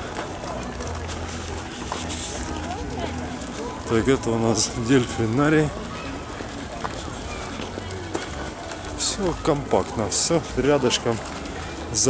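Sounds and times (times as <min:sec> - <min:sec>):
faint distant voices: 0:00.0 - 0:12.0
footsteps: 0:00.0 - 0:12.0.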